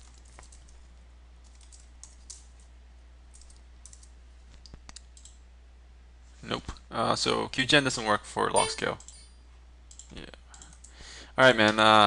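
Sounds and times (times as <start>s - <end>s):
keyboard typing: 1.4s - 2.7s, 3.3s - 5.4s.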